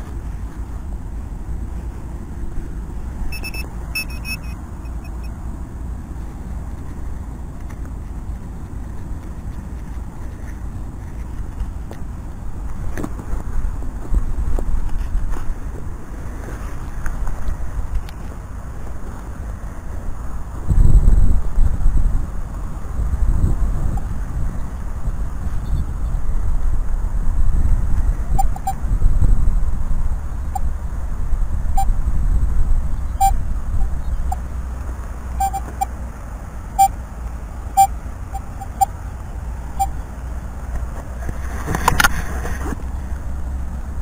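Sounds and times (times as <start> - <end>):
wind rumble on microphone: 0.0 - 44.0
metal detector short beeps: 3.3 - 5.4, 28.3 - 28.8, 33.1 - 34.4, 35.4 - 35.9, 36.8 - 37.0, 37.7 - 38.9, 39.8 - 40.0.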